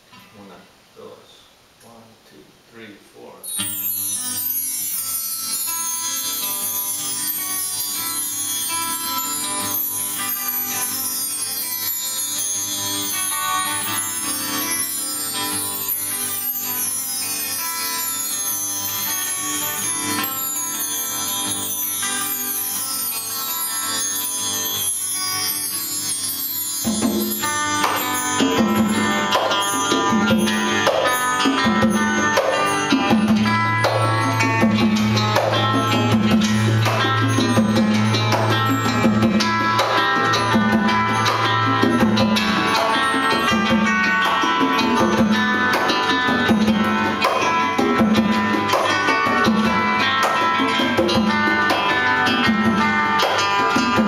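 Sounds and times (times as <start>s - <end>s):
acoustic guitar melody: 3.4s - 54.0s
bar chimes shimmering: 3.4s - 54.0s
congas hand-drummed rhythm: 3.5s - 54.0s.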